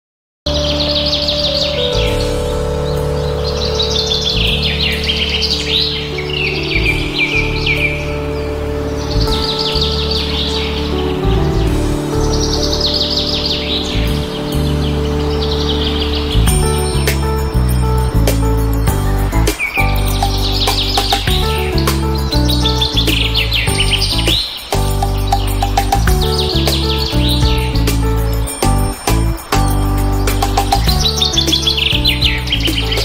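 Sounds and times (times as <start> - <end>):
birds chirping: 0.5 - 33.0
slow held music chords: 0.5 - 33.0.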